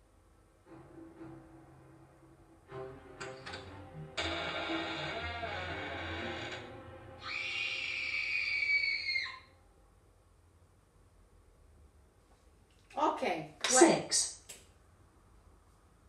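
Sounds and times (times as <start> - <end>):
rough eerie sound: 3.2 - 9.5
high cry: 7.2 - 9.6.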